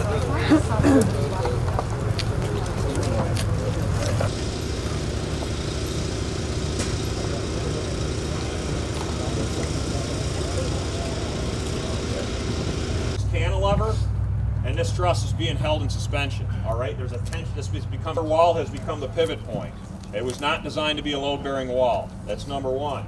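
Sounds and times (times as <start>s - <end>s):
truck engine idling: 0.0s - 23.0s
man talking: 13.2s - 23.0s.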